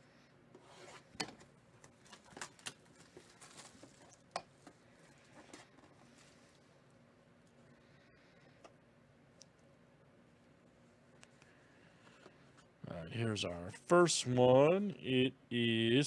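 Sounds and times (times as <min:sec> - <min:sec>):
plastic wrap crinkling: 0:01.9 - 0:04.3.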